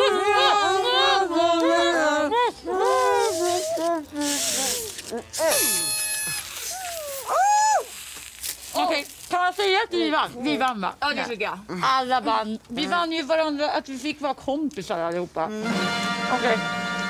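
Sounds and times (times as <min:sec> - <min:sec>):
muffled singing: 0:00.0 - 0:05.5
short voice sounds: 0:03.2 - 0:07.2
party horn blown: 0:04.2 - 0:07.2, 0:15.6 - 0:17.0.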